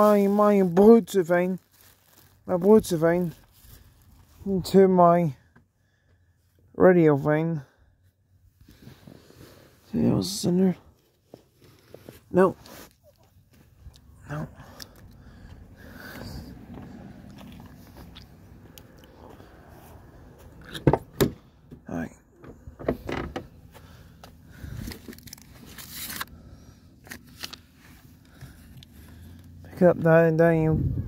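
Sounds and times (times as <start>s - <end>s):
clicks and knocks handling car: 20.7s - 23.9s.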